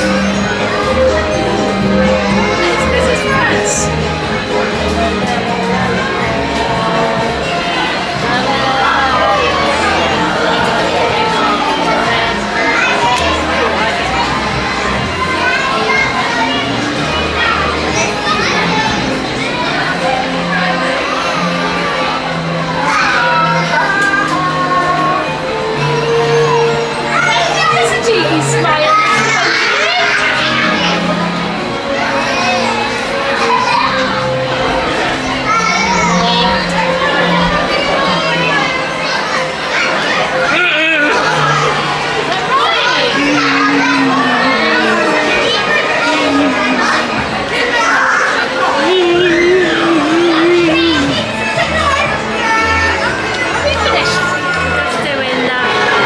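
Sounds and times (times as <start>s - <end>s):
carousel music: 0.0s - 56.0s
children shouting: 0.0s - 56.0s
crowd of voices chattering: 0.0s - 56.0s.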